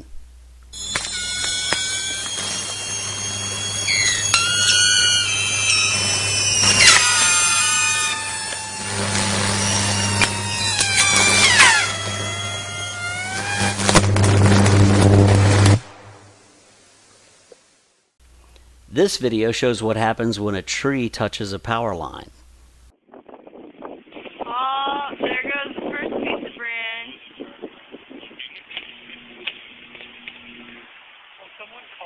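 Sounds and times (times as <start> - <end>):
electrical arcing buzzing hum: 0.0 - 17.5, 18.2 - 24.0, 27.2 - 31.4
arcing crackles and high whines: 0.0 - 21.1, 25.4 - 32.0.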